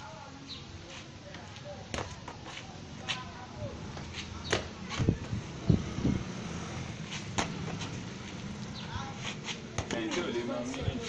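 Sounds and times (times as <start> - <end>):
football thumping: 1.9 - 2.5, 4.5 - 5.4, 7.3 - 7.9, 9.7 - 10.3.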